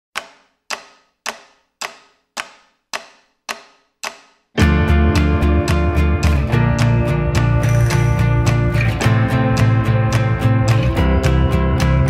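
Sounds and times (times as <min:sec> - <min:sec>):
sharp percussive clicks: 0:00.2 - 0:12.0
soundtrack music: 0:04.6 - 0:12.0.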